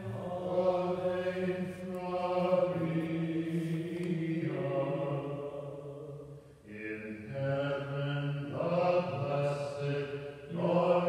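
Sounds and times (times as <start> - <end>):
man chanting slowly: 6.7 - 11.0.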